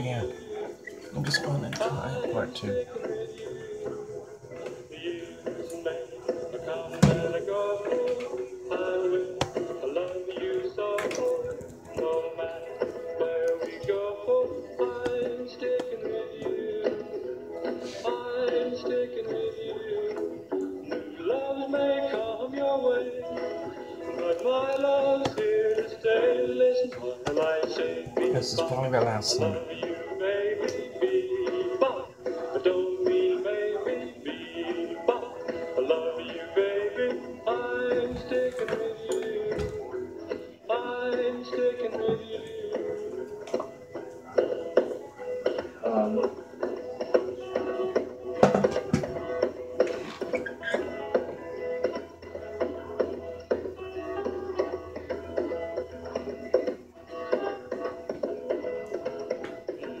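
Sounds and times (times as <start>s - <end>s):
song on small radio speaker: 0.0s - 60.0s.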